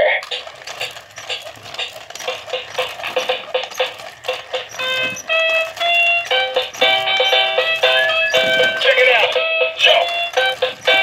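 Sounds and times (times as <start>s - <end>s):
toy electronic dance tune: 0.2s - 11.0s.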